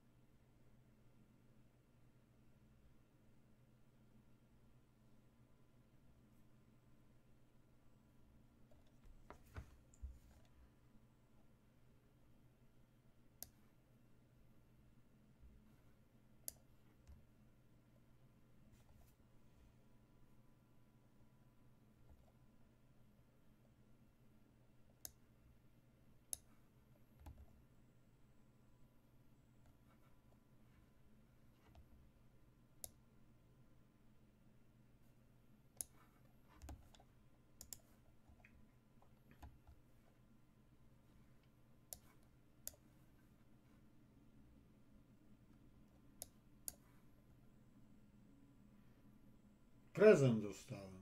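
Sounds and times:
computer mouse clicks: 13.4 - 13.6, 16.4 - 17.3, 24.9 - 25.2, 26.3 - 26.6, 27.2 - 27.6, 32.8 - 33.0, 35.8 - 39.8, 41.9 - 42.9, 45.9 - 46.9.

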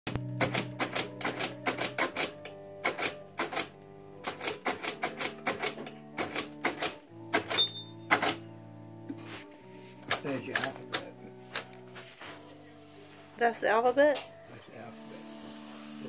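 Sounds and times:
sustained musical tones: 5.3 - 16.0.

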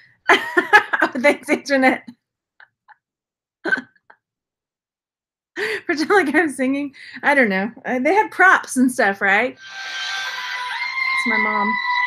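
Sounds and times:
woman giggling: 0.3 - 1.5, 3.7 - 4.2.

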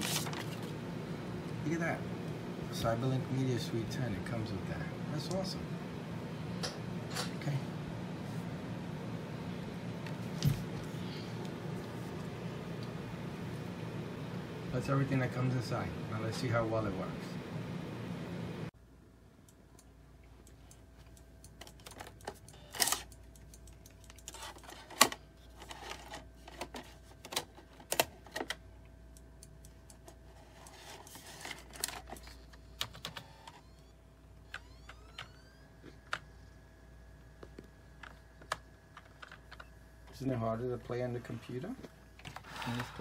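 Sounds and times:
disc drive spinning whine: 0.0 - 18.7, 30.3 - 43.0.

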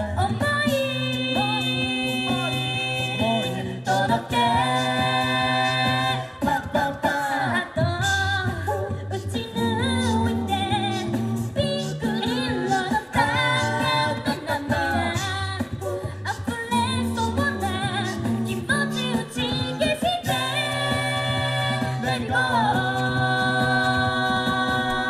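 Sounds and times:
a cappella group singing in harmony: 0.0 - 25.0.

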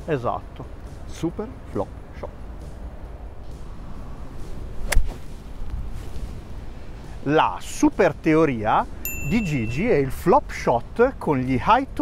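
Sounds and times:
golf club striking ball: 4.8 - 5.3.

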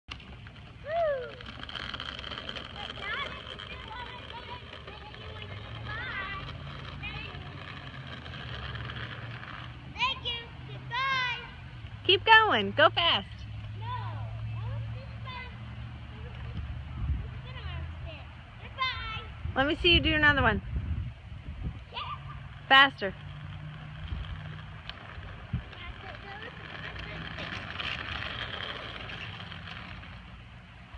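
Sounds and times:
plastic wheels rolling on asphalt: 0.0 - 30.9.

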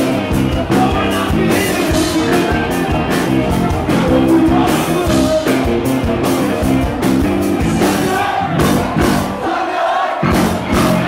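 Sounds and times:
electric guitar chords: 0.0 - 9.4, 10.2 - 11.0
live rock band playing: 0.0 - 9.5, 10.2 - 11.0.

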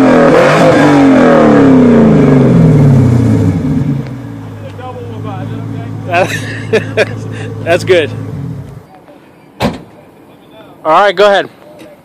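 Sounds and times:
car engine idling: 1.9 - 12.0
sharp thump: 9.6 - 10.0.

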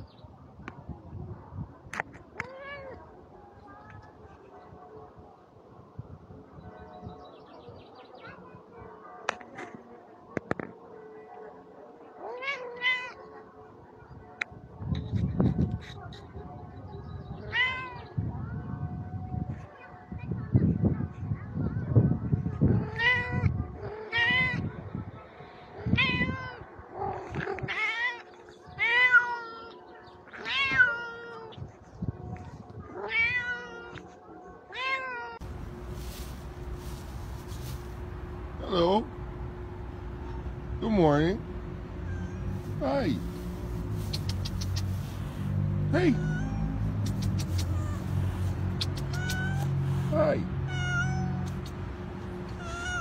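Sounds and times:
cat meowing: 30.4 - 31.6, 41.5 - 43.4, 46.1 - 49.9, 50.6 - 51.7, 52.5 - 53.0
vehicle engine humming: 35.4 - 53.0.

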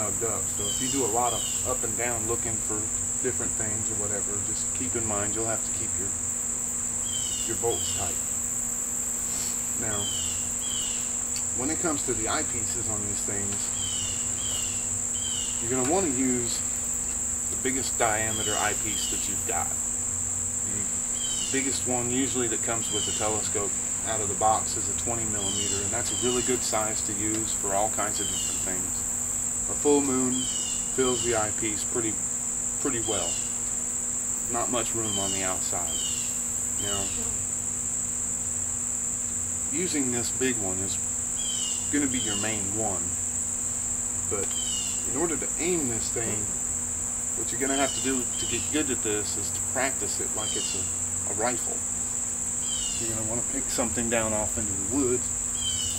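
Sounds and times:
faint low hum: 0.0 - 55.9
insects droning: 0.0 - 55.9.

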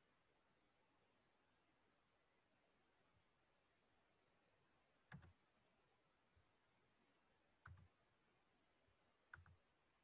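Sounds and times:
faint computer clicks: 5.1 - 5.4, 7.6 - 7.9, 9.3 - 9.6.

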